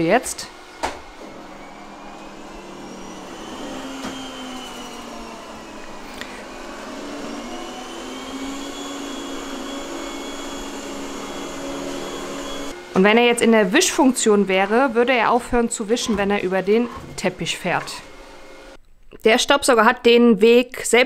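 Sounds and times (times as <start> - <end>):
robot vacuum whirring: 0.4 - 18.8.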